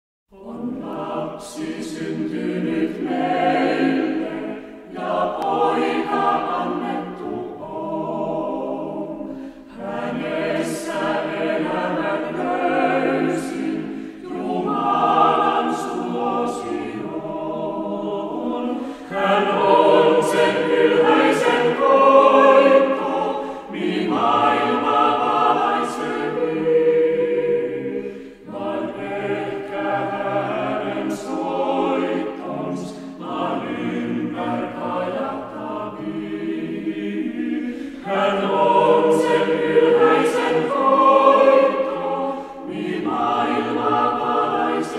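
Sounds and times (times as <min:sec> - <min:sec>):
chamber choir singing: 0:00.3 - 0:44.9.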